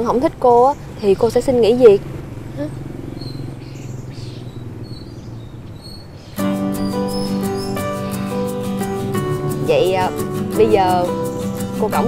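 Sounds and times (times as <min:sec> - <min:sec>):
faint bird chirps: 0:02.5 - 0:08.4.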